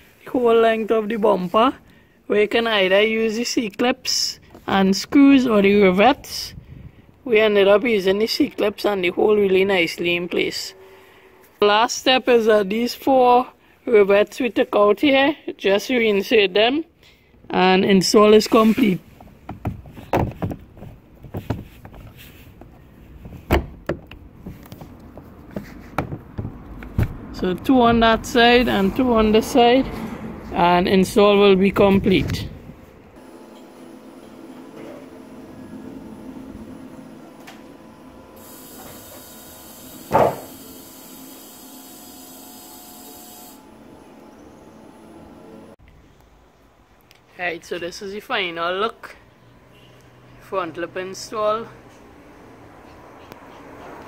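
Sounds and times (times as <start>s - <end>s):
loud thump: 40.1s - 40.5s.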